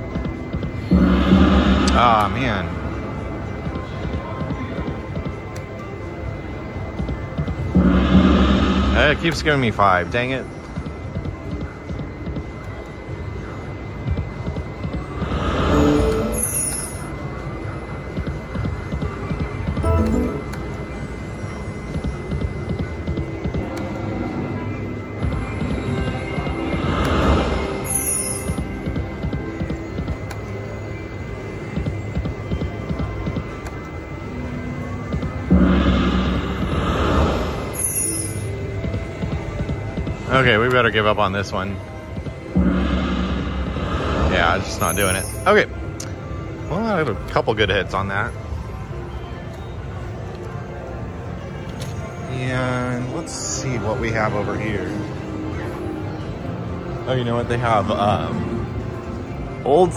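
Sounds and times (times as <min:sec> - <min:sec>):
electronic slot machine music: 0:00.0 - 0:04.0, 0:04.9 - 0:11.0, 0:15.1 - 0:45.9
slot machine spin sound effects: 0:00.9 - 0:02.9, 0:07.7 - 0:10.1, 0:15.2 - 0:17.2, 0:19.8 - 0:21.0, 0:42.6 - 0:45.6.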